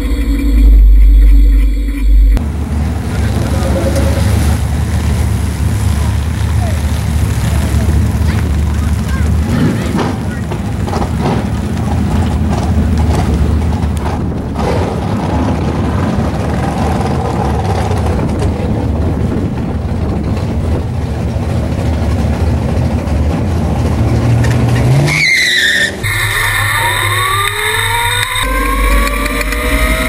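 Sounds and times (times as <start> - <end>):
drag racing engines rumbling: 0.0 - 30.0
engine accelerating hard: 0.0 - 30.0.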